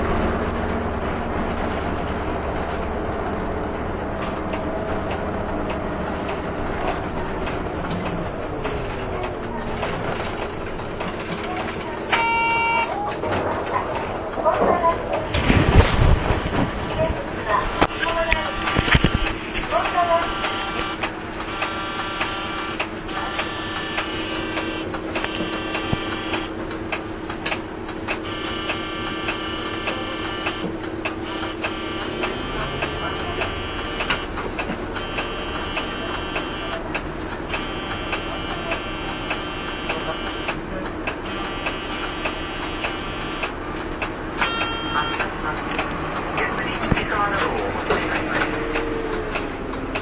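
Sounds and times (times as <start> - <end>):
bus diesel engine humming: 0.0 - 50.0
electronic buzzer tone: 7.6 - 12.9, 17.8 - 26.5, 28.2 - 30.6, 31.2 - 34.3, 35.0 - 36.8, 37.6 - 40.6, 41.2 - 43.5, 44.4 - 45.2.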